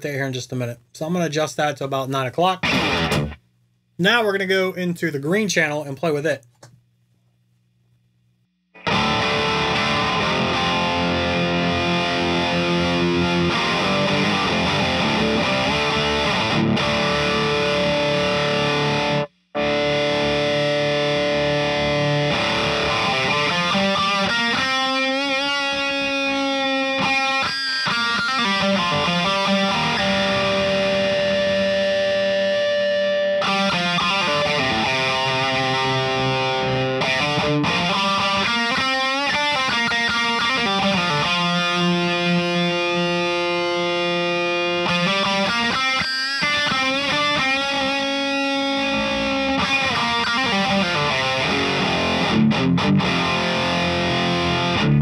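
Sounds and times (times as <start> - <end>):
distorted electric guitar: 2.6 - 3.5, 8.7 - 55.0.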